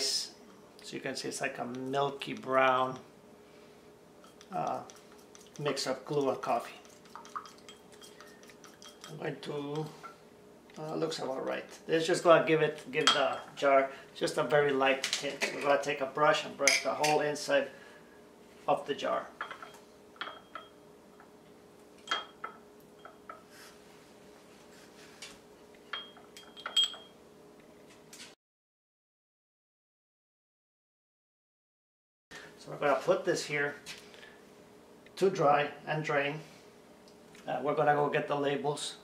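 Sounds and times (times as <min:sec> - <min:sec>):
stirring in small metal glass: 0:04.2 - 0:09.5
paintbrush clinking against glass: 0:06.8 - 0:09.2, 0:19.4 - 0:20.8, 0:22.1 - 0:23.5, 0:25.9 - 0:27.2
light metal clinks: 0:25.9 - 0:27.2.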